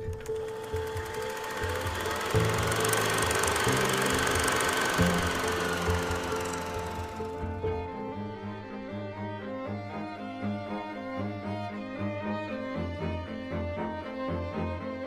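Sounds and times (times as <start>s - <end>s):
dense rattling noise: 0.2s - 7.6s.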